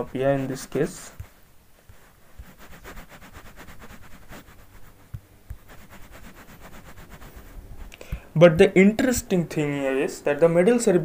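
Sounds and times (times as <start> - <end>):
stylus scribbling on a touchscreen: 0.0 - 9.3.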